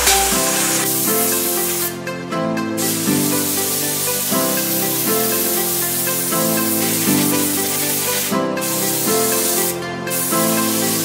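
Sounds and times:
instrumental background music: 0.0 - 11.0
steam nozzle hissing: 2.8 - 11.0.

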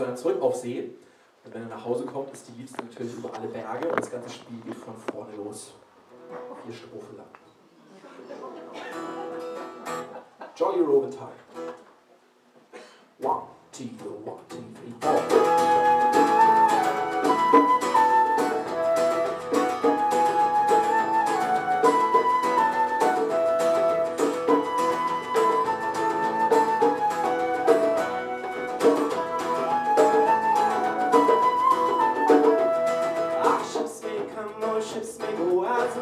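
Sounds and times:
flute melody: 15.0 - 33.9
acoustic guitar strumming: 15.0 - 36.0.

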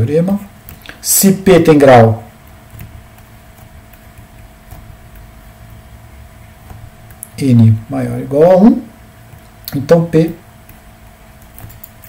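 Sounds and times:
faint constant tone: 0.0 - 12.0
low background hum: 0.0 - 12.0
stylus ticking on tablet: 2.5 - 5.8.

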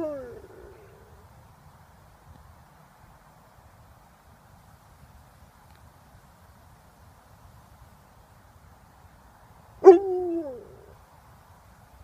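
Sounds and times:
dog howling: 0.0 - 0.9, 9.8 - 10.9.

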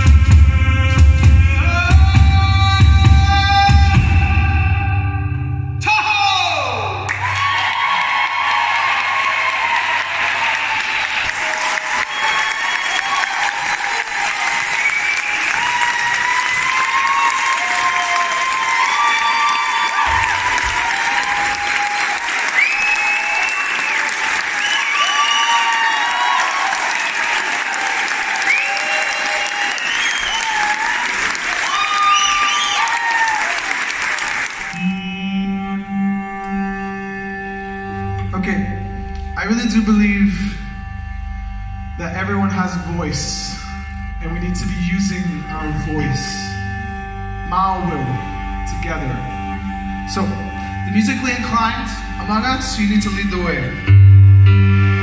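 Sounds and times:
high whoops: 6.5 - 33.9
audience applauding: 7.0 - 35.0
piano chord: 53.3 - 55.0.

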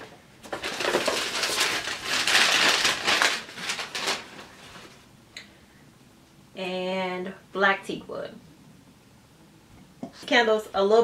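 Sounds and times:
paper bag crinkling and rustling: 0.4 - 5.0.

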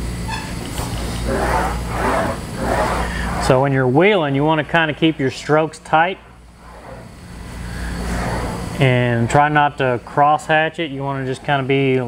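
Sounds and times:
sheet metal rolling through wheel: 0.3 - 3.8, 5.8 - 9.4.

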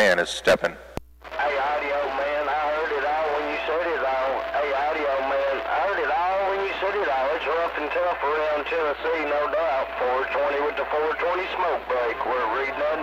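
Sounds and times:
steady low hum: 0.0 - 13.0
voice over radio speaker: 0.0 - 13.0.

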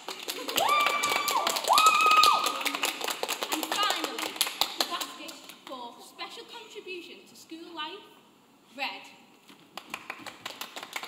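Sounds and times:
hands clapping: 0.0 - 5.8, 9.5 - 11.0
cheering whoops: 0.4 - 2.6.

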